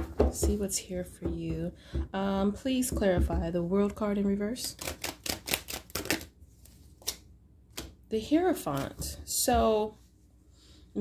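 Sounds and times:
cards being shuffled: 0:04.7 - 0:08.0.

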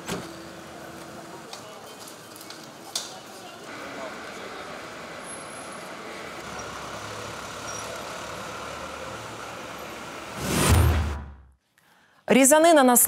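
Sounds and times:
street traffic: 0:00.0 - 0:11.5
whoosh with low boom: 0:10.4 - 0:11.5.

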